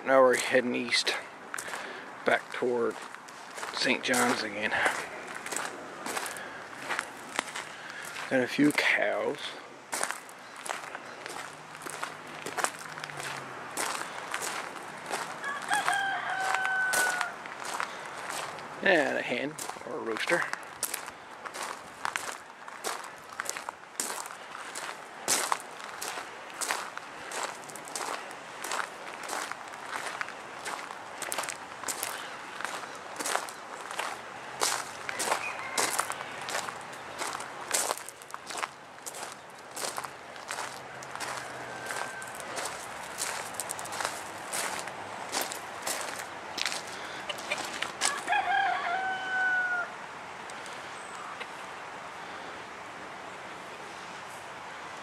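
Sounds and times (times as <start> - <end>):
footsteps on gravel: 0.3 - 48.4
rooster crowing: 15.4 - 17.4, 35.1 - 36.5, 40.8 - 42.8, 47.3 - 50.0.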